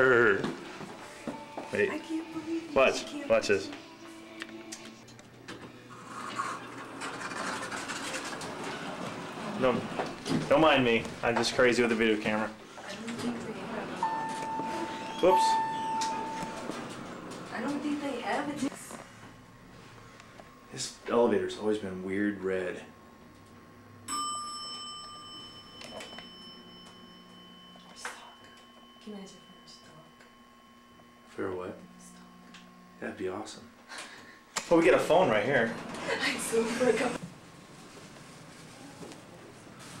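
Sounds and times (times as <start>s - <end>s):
elevator low hum: 8.2s - 40.0s
elevator chime ding: 14.0s - 17.8s, 24.1s - 32.1s.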